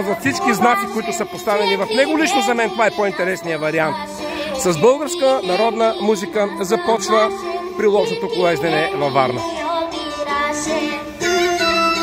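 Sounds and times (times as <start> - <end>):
instrumental backing: 0.0 - 12.0.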